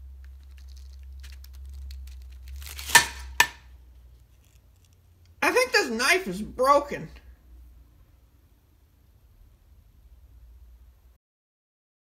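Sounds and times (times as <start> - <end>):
cabbage leaves crackling: 0.0 - 3.6
knife crunching through cabbage: 0.2 - 3.6.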